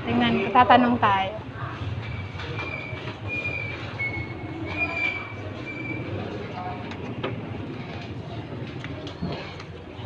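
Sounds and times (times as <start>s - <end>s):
high-pitched squeaks: 2.0s - 6.2s.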